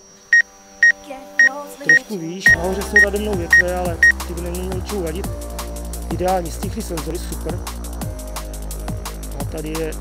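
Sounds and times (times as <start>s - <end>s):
short high warning beeps: 3.0s - 4.2s.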